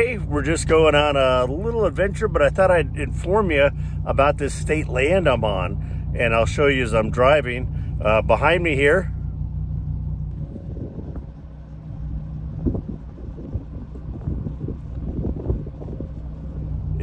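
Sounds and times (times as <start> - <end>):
car engine and road drone: 0.0 - 17.0
uneven low rumbling: 0.0 - 17.0
wind buffeting: 9.8 - 17.0.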